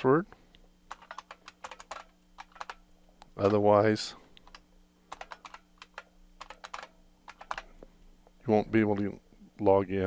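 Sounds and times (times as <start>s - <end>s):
computer keyboard typing: 0.9s - 2.8s, 4.4s - 7.7s.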